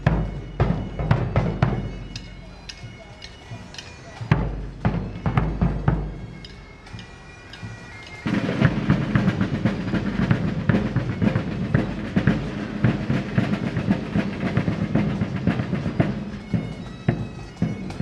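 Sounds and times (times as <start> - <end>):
bagpipes with drones: 0.0 - 18.0
drums beating: 0.0 - 18.0.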